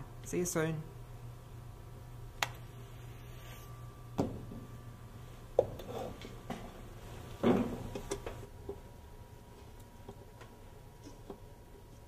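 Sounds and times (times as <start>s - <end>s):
steady low hum: 0.0s - 12.0s
objects rubbing on hard surface: 5.8s - 6.2s.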